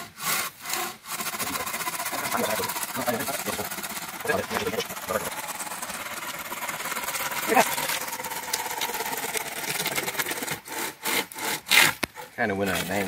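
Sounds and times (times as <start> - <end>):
saw rasping through wood: 0.0 - 13.0.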